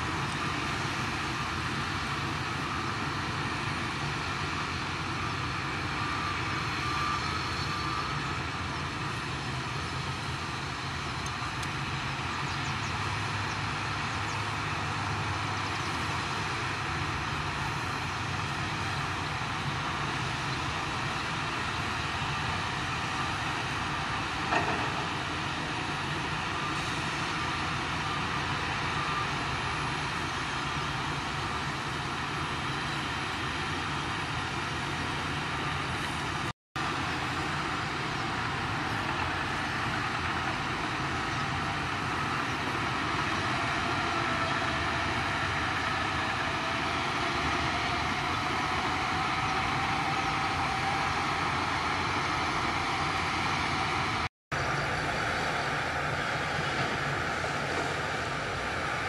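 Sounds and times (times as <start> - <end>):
bulldozer diesel engines: 0.0 - 59.0.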